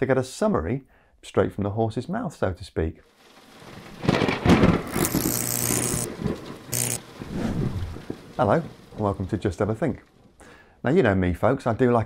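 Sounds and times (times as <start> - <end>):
high hissing crackle: 3.1 - 10.6
thunder-like rumble and crash: 3.4 - 4.9, 6.1 - 10.0.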